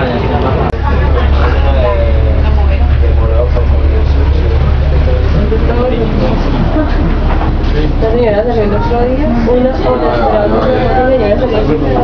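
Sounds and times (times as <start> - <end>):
bus engine and road rumble: 0.0 - 12.0
people's voices: 0.0 - 12.0.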